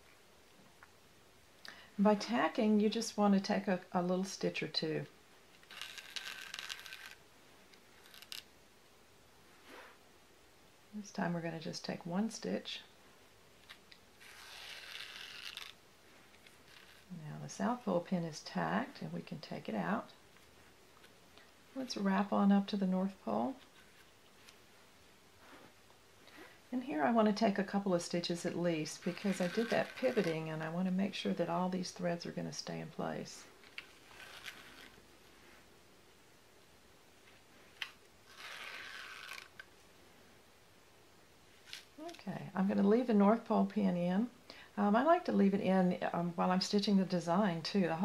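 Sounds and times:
needle clicking: 5.5s - 8.5s, 13.6s - 17.1s, 28.9s - 30.7s, 37.8s - 39.7s
thread rasping through ball: 5.5s - 8.5s, 13.6s - 17.2s, 28.3s - 31.0s, 37.8s - 39.7s.

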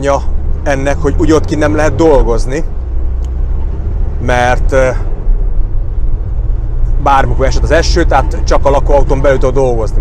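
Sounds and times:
people speaking: 0.0s - 2.7s, 4.2s - 5.0s, 7.0s - 10.0s
low rumble inside van cab: 0.0s - 10.0s.

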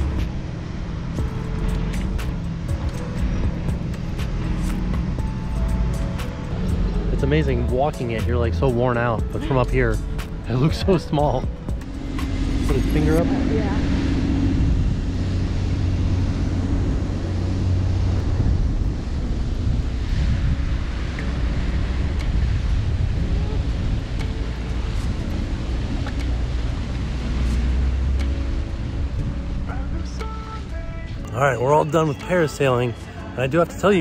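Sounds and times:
wind buffeting microphone: 0.0s - 30.1s
boat motor running: 0.0s - 34.0s.

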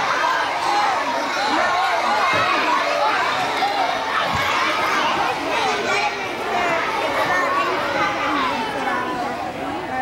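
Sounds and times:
children talking at once: 0.0s - 10.0s.

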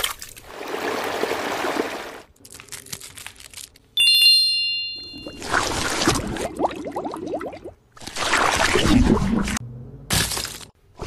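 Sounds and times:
bright bell-like chime: 4.0s - 5.5s.

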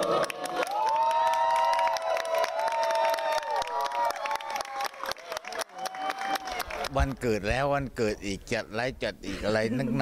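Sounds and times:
group cheering: 0.0s - 7.0s
hands clapping: 0.0s - 7.4s.

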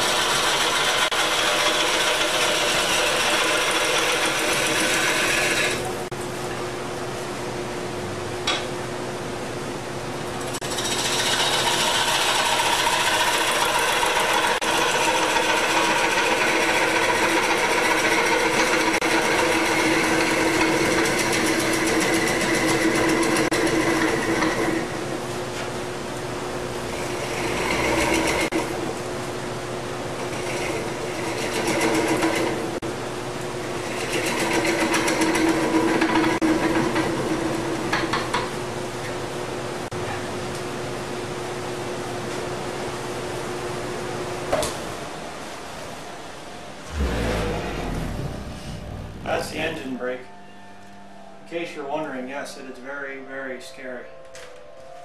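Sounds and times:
turning tool cutting wood: 0.0s - 5.9s, 10.6s - 24.9s, 26.9s - 28.7s, 30.2s - 32.6s, 33.8s - 37.1s
wood lathe humming: 0.0s - 6.1s, 10.6s - 25.1s, 26.8s - 28.8s, 30.2s - 32.8s, 33.7s - 38.4s.

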